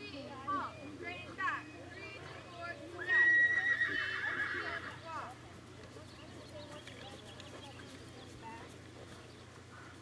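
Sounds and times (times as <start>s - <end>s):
horse whinnying: 3.0s - 5.0s.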